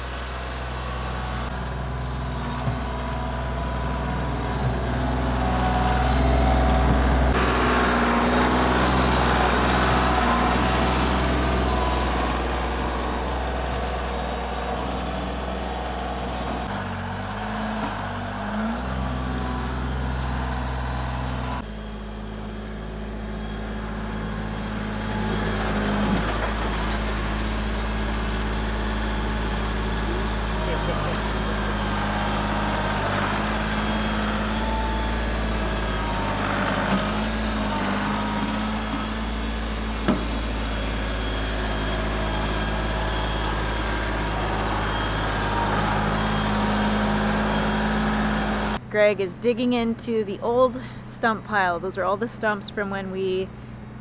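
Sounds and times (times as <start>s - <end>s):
loader pushing soil: 0.0s - 49.2s
tractor engine running: 0.0s - 54.0s.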